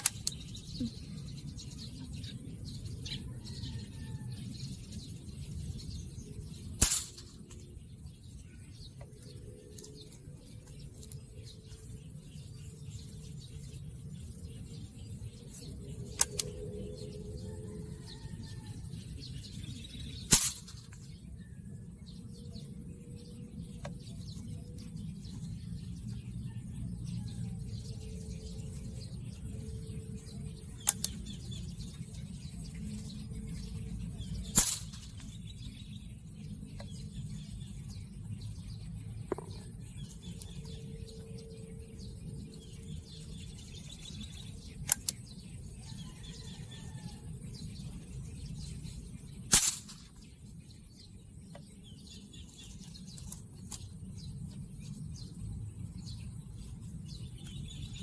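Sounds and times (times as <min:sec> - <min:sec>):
air rifle shots: 0:06.8 - 0:07.6, 0:20.3 - 0:21.0, 0:34.4 - 0:35.4, 0:49.5 - 0:50.2.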